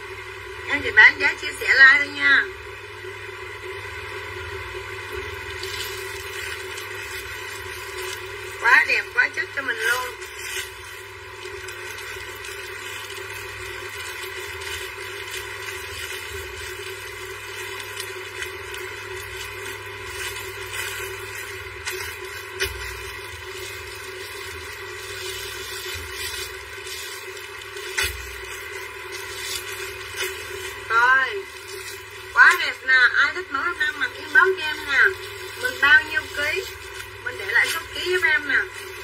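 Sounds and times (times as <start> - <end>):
droning background hum: 0.0 - 39.0
plastic packaging crinkling: 5.2 - 33.1, 33.7 - 39.0.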